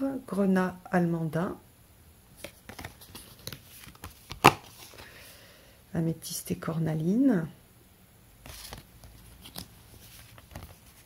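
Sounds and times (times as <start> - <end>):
cards handling noise: 2.4 - 5.4, 8.4 - 11.0.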